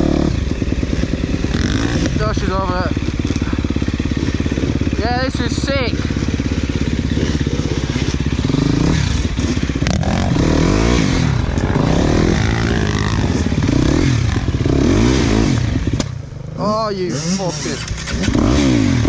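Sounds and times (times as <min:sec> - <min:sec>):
dirt bike engine revving: 0:00.0 - 0:19.0
person speaking: 0:16.6 - 0:17.9.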